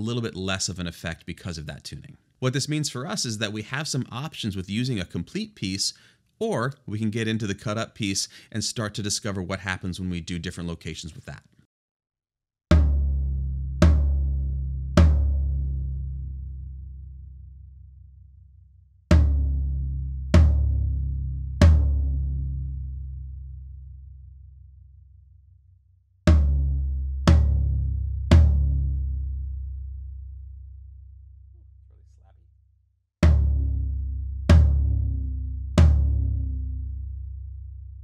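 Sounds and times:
floor tom drum hits booming: 0:12.7 - 0:13.2, 0:13.8 - 0:14.3, 0:15.0 - 0:15.4, 0:20.4 - 0:20.8, 0:26.3 - 0:26.7, 0:27.3 - 0:27.7, 0:33.2 - 0:33.8, 0:35.8 - 0:36.2.

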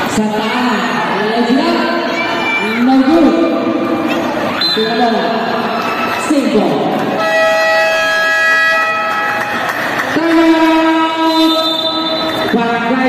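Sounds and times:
busy gym noise: 0:00.0 - 0:13.0
long horn blasts: 0:07.2 - 0:09.4.

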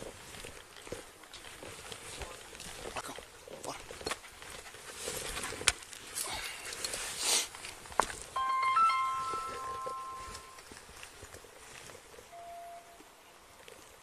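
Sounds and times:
electronic beep tones: 0:08.4 - 0:10.6
short lower beep: 0:08.4 - 0:10.6, 0:12.4 - 0:13.0.

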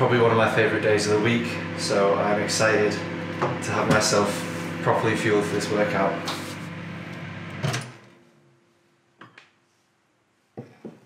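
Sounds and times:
microwave oven humming: 0:00.0 - 0:08.6.

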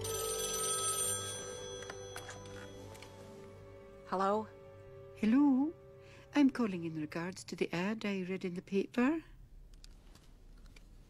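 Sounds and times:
telephone ringing: 0:00.0 - 0:03.2.

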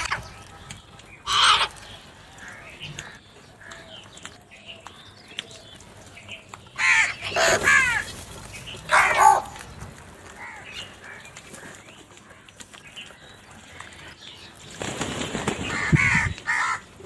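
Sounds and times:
crows cawing: 0:01.2 - 0:01.8, 0:06.8 - 0:08.1, 0:10.4 - 0:12.5, 0:15.7 - 0:16.9.

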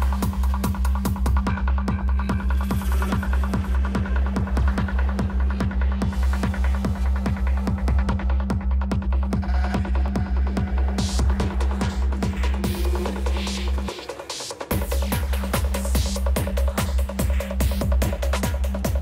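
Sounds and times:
kick drum: 0:00.0 - 0:13.4, 0:14.7 - 0:19.0
deep bass drone: 0:00.0 - 0:14.1, 0:14.7 - 0:19.0
ticking hi-hats: 0:00.0 - 0:19.0.

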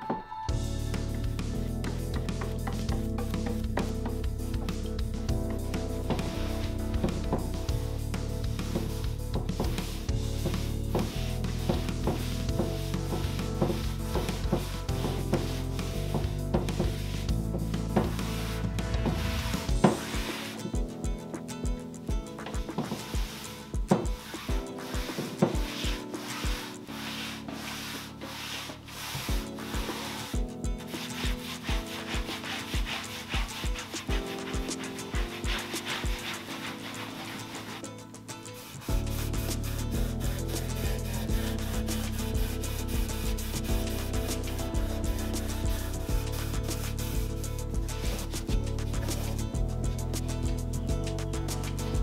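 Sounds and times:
background music with beat: 0:00.0 - 0:52.0
cloth rag wiping wood: 0:05.9 - 0:20.8, 0:22.4 - 0:50.5.

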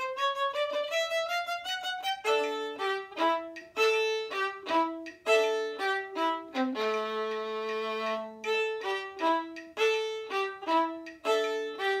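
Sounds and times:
solo violin playing: 0:00.0 - 0:12.0.

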